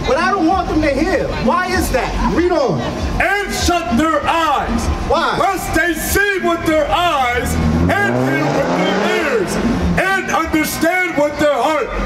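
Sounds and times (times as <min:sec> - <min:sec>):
man shouting: 0:00.0 - 0:12.0
vehicle engine speeding up: 0:06.9 - 0:10.3.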